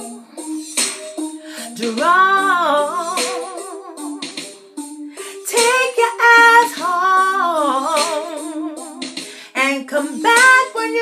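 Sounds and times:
woman singing unaccompanied: 1.7s - 4.1s, 5.4s - 11.0s.

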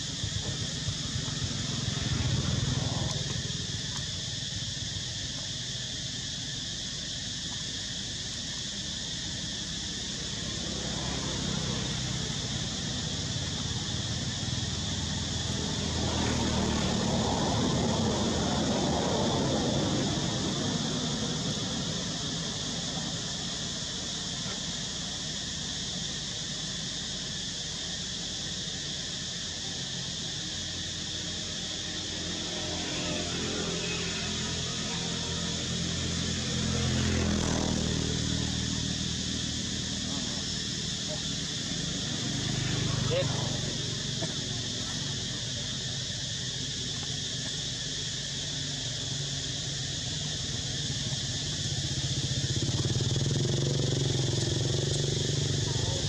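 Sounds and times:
indistinct voices: 33.4s - 47.6s, 50.1s - 56.0s.

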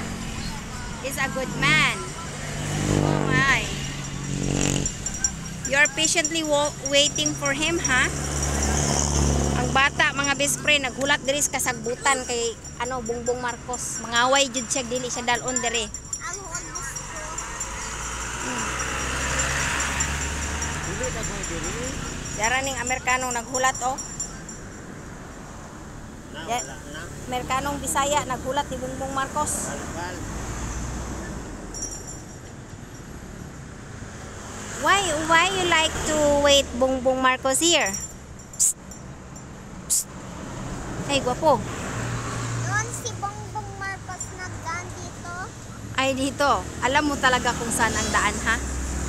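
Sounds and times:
vehicle passing on highway: 0.0s - 49.0s.

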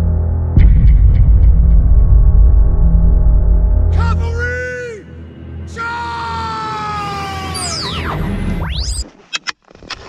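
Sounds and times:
heavy deep rumble: 0.0s - 4.0s
siren-like tone sliding down: 7.1s - 9.0s.

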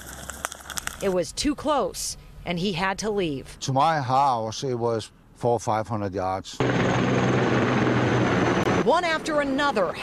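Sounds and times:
helicopter rotor and turbine noise: 6.6s - 10.0s.

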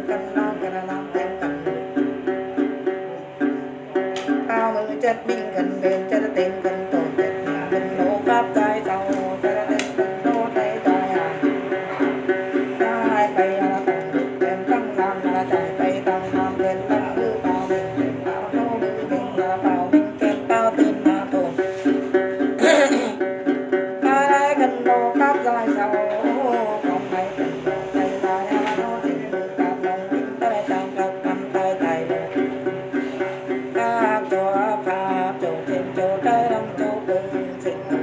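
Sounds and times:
plucked lute: 0.0s - 38.0s.

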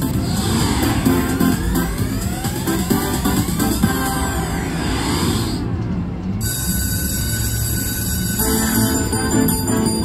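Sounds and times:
steady held electronic tones: 6.4s - 10.0s.

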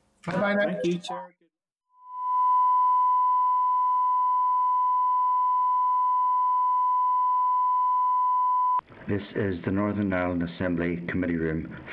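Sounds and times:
electronic test tone: 2.0s - 8.8s.

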